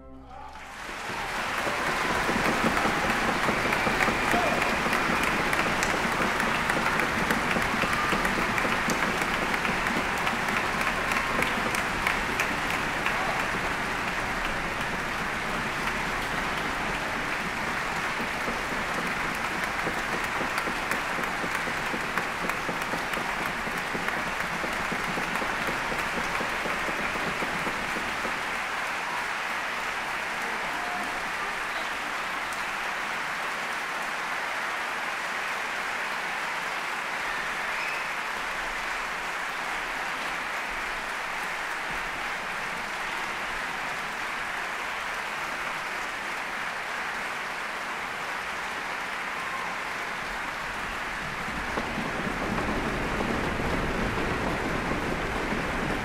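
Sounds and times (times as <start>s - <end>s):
audience applauding: 0.5s - 56.0s.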